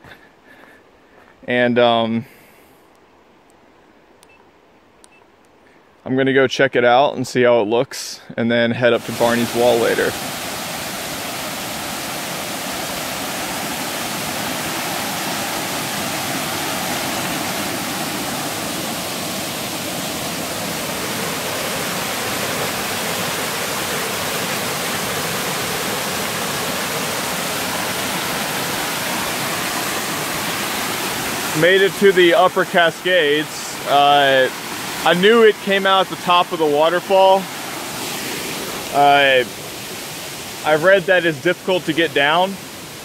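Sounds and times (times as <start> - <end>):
waterfall roaring: 8.9 - 43.0.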